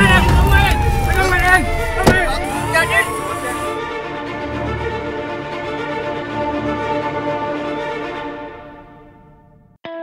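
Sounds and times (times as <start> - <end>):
police siren wailing: 0.0 - 5.1
sharp thud: 1.8 - 2.4.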